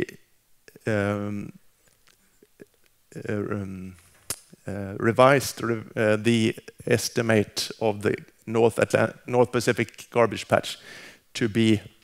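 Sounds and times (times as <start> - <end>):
man saying uh: 0.0 - 1.6, 3.2 - 4.0, 4.7 - 10.8, 11.4 - 12.0.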